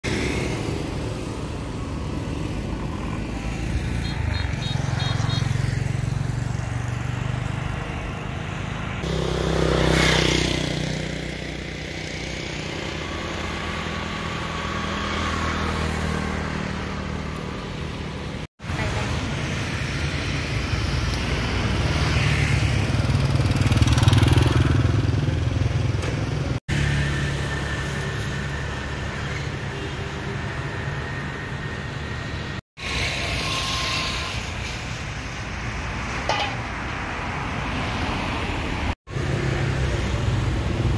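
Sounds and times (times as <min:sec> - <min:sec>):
motorbikes passing by: 0:00.0 - 0:34.9, 0:36.0 - 0:40.9
low engine hum of traffic: 0:00.0 - 0:40.9.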